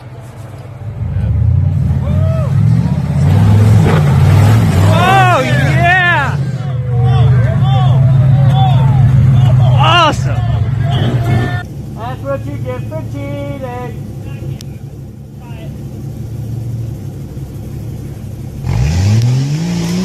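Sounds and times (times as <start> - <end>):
onlookers yelling: 0.0 - 3.4, 4.5 - 11.6.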